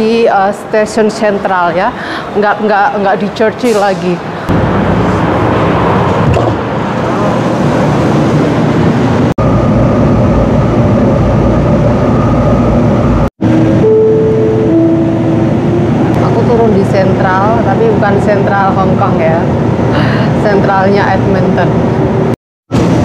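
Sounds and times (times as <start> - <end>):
train wheels and motors running: 3.0 - 23.0
steady whine: 4.5 - 23.0
held tones: 13.8 - 16.0.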